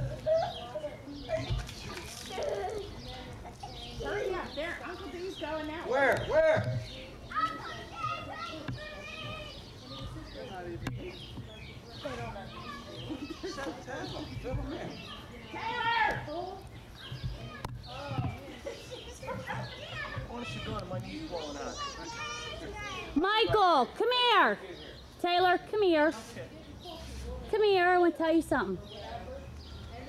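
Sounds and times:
children calling and chattering: 0.0 - 30.0
indistinct talk: 0.0 - 30.0.

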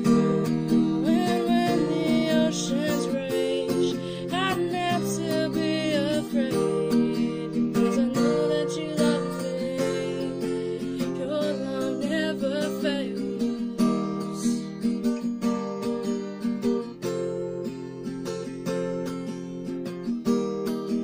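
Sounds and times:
person singing: 0.0 - 14.8
acoustic guitar strummed chords: 0.0 - 21.0.

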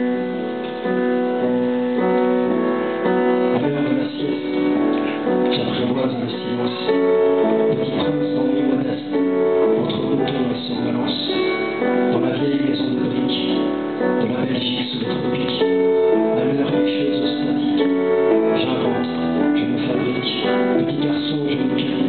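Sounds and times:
keyboard chords: 0.0 - 22.0.

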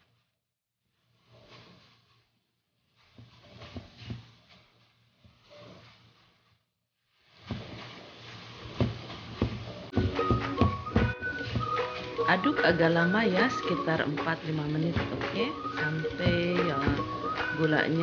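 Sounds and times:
spatula scraping dough in a pan: 0.0 - 18.0
background music: 9.9 - 18.0.

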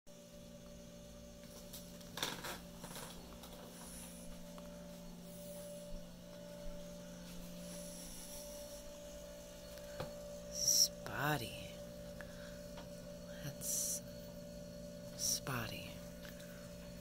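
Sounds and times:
low electrical hum: 0.1 - 17.0.

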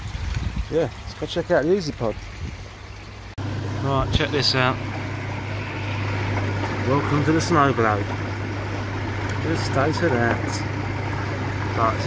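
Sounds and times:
water churning and trickling: 0.0 - 12.0
steady low hum: 2.6 - 12.0.

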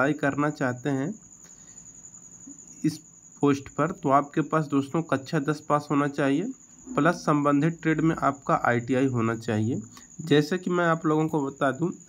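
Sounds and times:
man speaking: 0.0 - 1.2, 2.8 - 12.0
faint high-pitched whine: 0.0 - 12.0.

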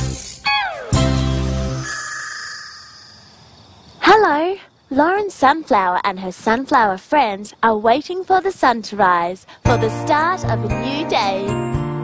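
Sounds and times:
held high musical tone: 0.5 - 3.6.

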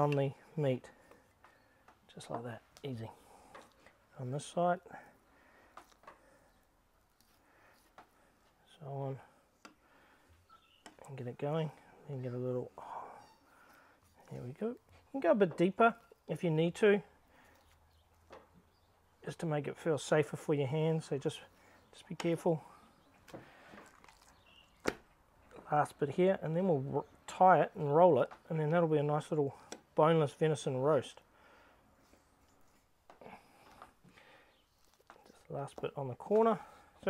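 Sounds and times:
faint handling sounds: 0.0 - 37.0.

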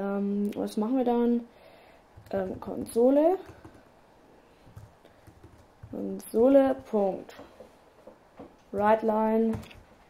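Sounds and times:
computer keyboard keystrokes: 3.4 - 3.9, 4.7 - 6.0.

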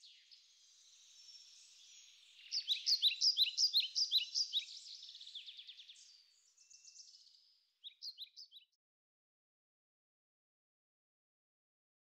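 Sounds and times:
songbird chirping: 0.0 - 8.8.

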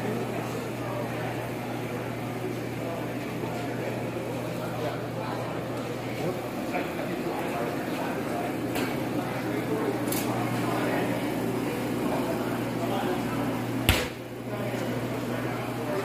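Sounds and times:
background chatter of people: 0.0 - 16.0.

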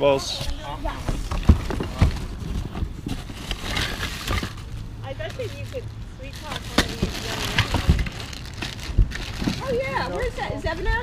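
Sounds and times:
plastic toys clattering: 1.2 - 10.8.

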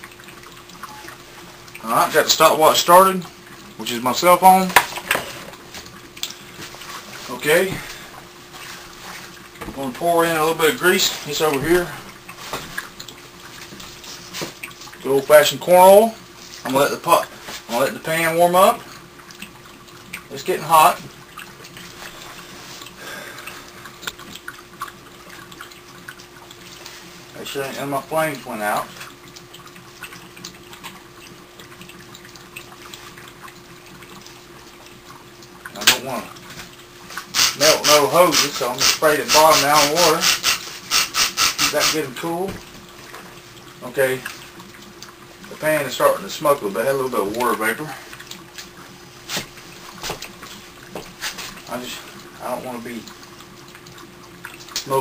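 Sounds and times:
faint steady hiss: 0.0 - 29.5, 34.0 - 55.0
faint steady hum: 0.0 - 55.0
oil crackling and popping: 35.5 - 42.6
frying pan sizzling: 35.7 - 44.6.

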